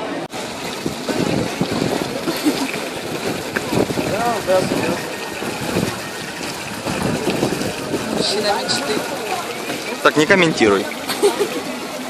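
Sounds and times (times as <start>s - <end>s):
fountain water splashing: 0.0s - 12.0s
hubbub of voices: 0.0s - 12.0s.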